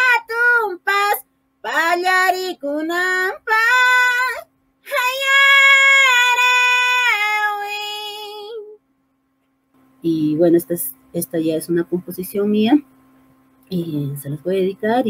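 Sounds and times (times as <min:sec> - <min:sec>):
woman singing a cappella: 0:00.0 - 0:08.8, 0:10.0 - 0:12.8, 0:13.7 - 0:15.0.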